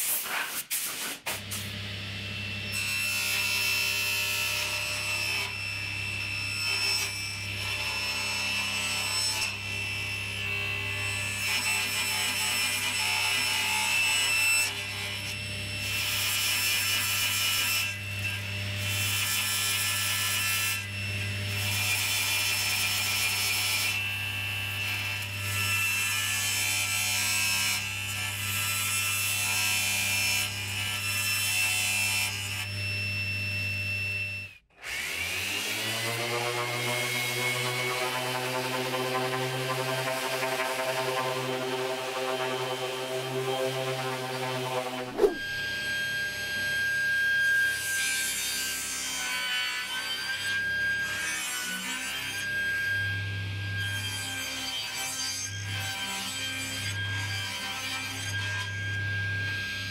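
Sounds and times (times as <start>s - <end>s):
table saw cutting: 0.2s - 59.9s
random orbital sander: 35.1s - 45.6s.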